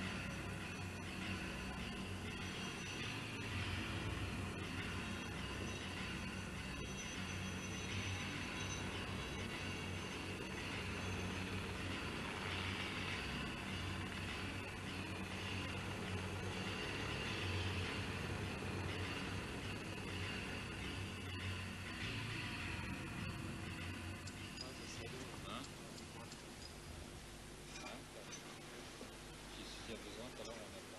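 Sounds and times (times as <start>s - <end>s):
helicopter hovering: 0.0s - 27.2s.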